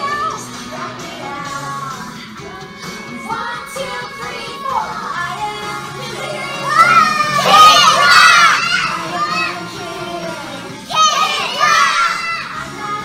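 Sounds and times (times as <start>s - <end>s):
children shouting and cheering: 0.0s - 1.8s, 3.0s - 13.0s
background music: 0.0s - 13.0s.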